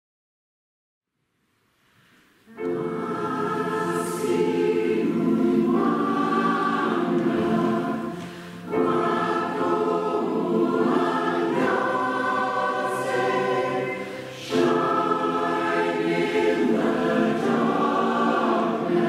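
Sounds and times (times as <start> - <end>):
mixed choir singing: 2.6 - 19.0.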